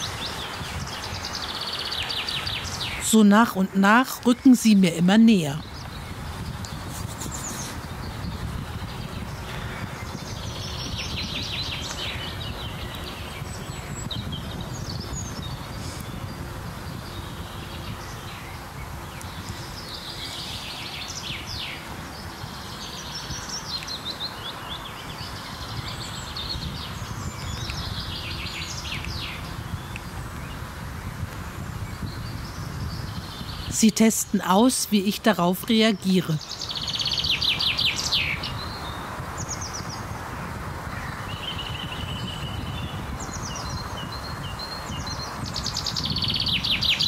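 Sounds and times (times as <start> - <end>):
songbirds singing: 0.0 - 47.0
wind on microphone: 0.0 - 47.0.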